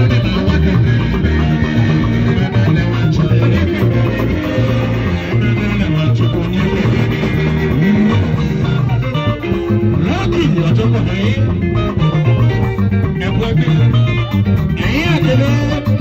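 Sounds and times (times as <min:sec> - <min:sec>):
live band with electric guitar: 0:00.0 - 0:16.0
low bass line: 0:00.0 - 0:16.0.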